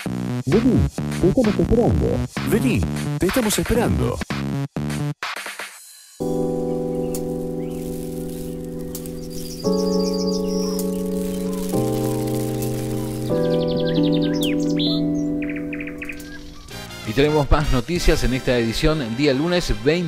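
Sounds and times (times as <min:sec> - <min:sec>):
soft held music chords: 0:06.2 - 0:16.8
bird chirps: 0:06.2 - 0:17.0.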